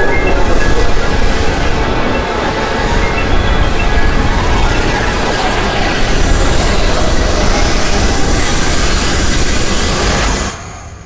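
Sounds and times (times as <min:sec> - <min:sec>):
loud rushing and rumbling: 0:00.0 - 0:10.9.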